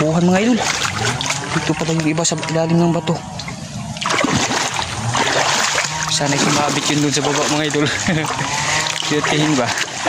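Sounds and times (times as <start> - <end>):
person wading through splashing water: 0.0 - 10.0.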